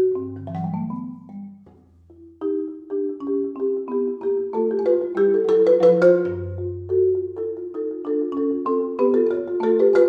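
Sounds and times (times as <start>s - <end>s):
solo marimba: 0.0s - 10.0s.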